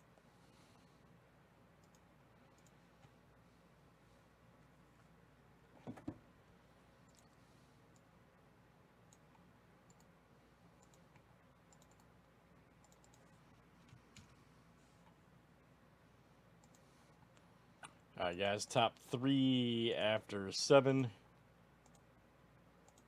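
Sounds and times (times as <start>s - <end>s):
computer mouse clicks: 1.8s - 3.2s, 7.0s - 8.1s, 9.1s - 10.1s, 10.8s - 12.1s, 12.8s - 14.4s, 16.6s - 18.0s, 21.8s - 22.1s.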